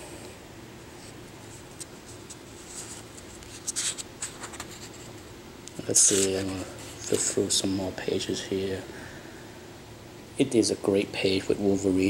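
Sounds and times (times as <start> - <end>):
paper pages rustling: 1.0 - 5.2, 5.8 - 7.5.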